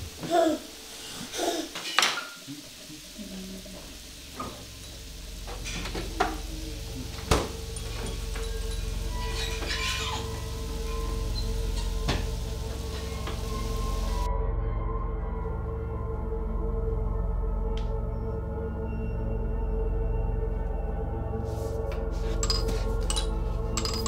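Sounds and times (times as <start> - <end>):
dishes and utensils clinking: 1.7 - 2.9, 4.3 - 6.5, 7.2 - 14.0, 22.2 - 24.0
low music drone: 2.6 - 24.0.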